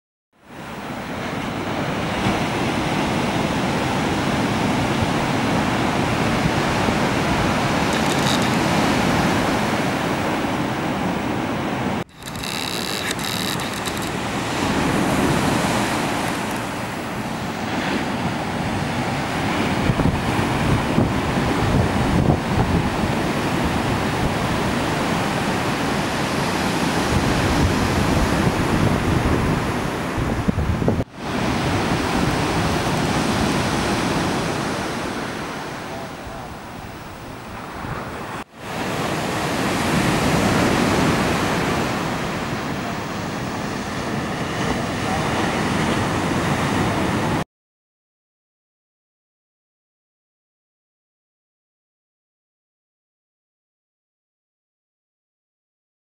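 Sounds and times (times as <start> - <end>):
ocean surf breaking: 0.4 - 47.4
wind buffeting microphone: 1.1 - 35.5.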